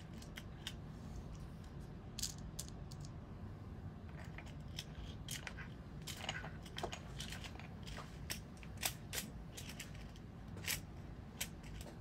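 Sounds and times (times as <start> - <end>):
rustling of items and clothing: 4.2 - 12.0.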